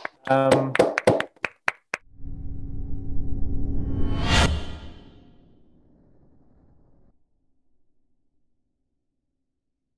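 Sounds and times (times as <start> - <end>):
hand claps: 0.0 - 2.0.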